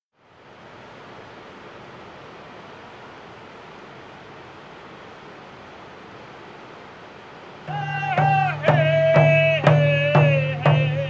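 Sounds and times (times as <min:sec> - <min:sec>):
river water rushing in rapids: 0:00.2 - 0:11.0.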